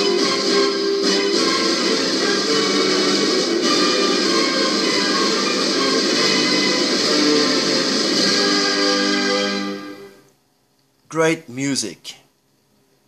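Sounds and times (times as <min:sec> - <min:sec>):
music from a vinyl record: 0:00.0 - 0:10.3.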